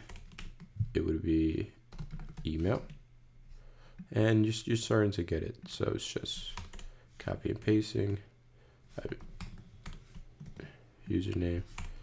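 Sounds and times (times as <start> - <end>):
computer keyboard typing: 0.0 - 0.7, 1.9 - 3.0, 6.4 - 6.9, 9.1 - 10.7.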